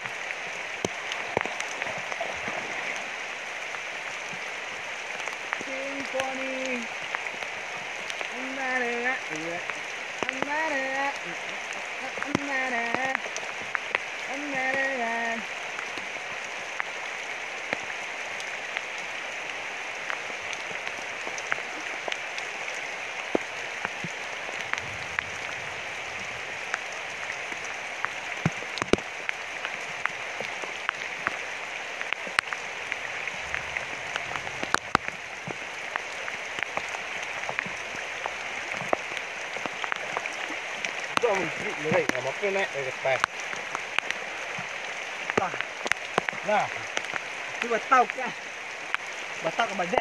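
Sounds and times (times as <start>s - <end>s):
heavy rain on water: 0.0s - 50.0s.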